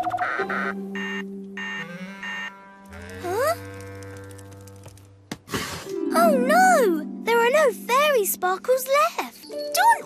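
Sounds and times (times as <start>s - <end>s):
background music low chord: 0.0s - 3.8s, 5.9s - 10.0s.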